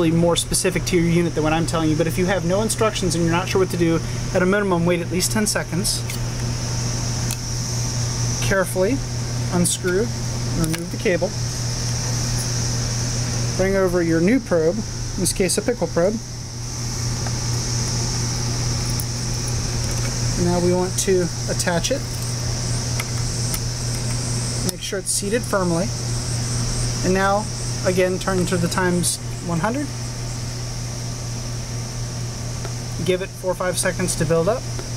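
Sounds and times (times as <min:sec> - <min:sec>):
low mechanical hum: 0:00.0 - 0:34.9.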